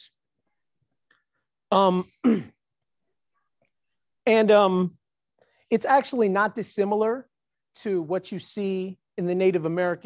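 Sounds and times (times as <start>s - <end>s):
man clearing throat: 2.0s - 2.6s.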